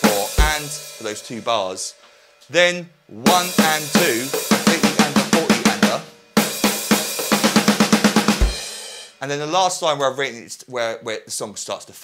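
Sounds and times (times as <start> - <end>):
electronic drum strokes: 3.2 - 9.2.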